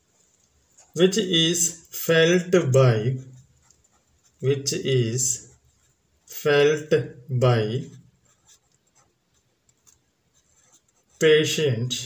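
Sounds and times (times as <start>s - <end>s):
felt-tip marker scratching: 7.9s - 11.3s.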